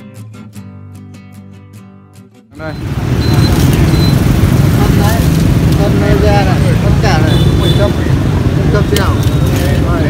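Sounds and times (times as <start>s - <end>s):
strummed acoustic guitar: 0.0s - 3.9s
street noise rumble: 0.1s - 10.0s.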